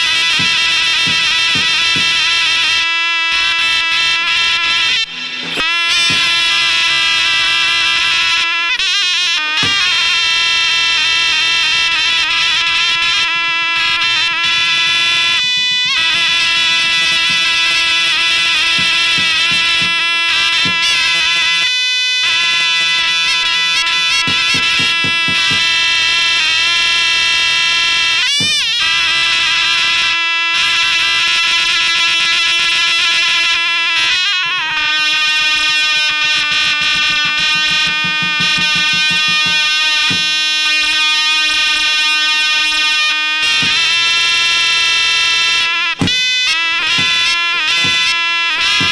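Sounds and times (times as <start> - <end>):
bass drum beats: 0.0 - 7.3, 9.6 - 10.2, 16.0 - 21.4, 24.0 - 26.0, 28.2 - 29.3, 36.4 - 40.4, 43.5 - 44.0, 45.9 - 48.9
shawm playing long high note: 0.0 - 48.9
shrill reed pipe melody: 0.0 - 48.9.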